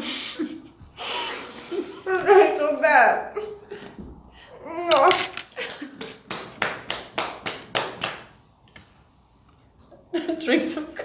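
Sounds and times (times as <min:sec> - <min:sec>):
sharp hand slaps: 0:06.0 - 0:08.3.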